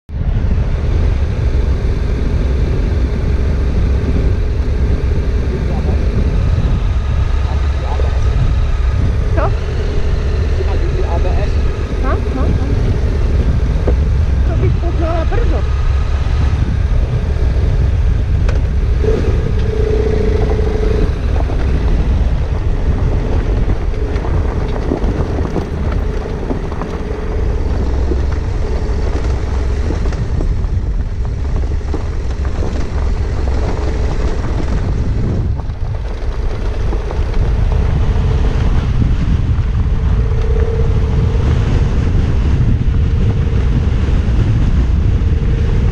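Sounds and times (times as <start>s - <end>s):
motorcycle engines running: 0.1s - 45.9s
wind rumble on microphone: 0.1s - 45.9s.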